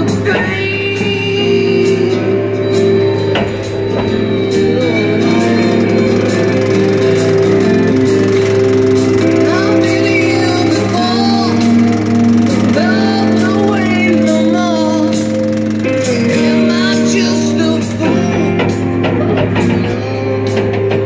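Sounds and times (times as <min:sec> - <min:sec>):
music with singing and beat: 0:00.0 - 0:07.2, 0:09.2 - 0:21.0.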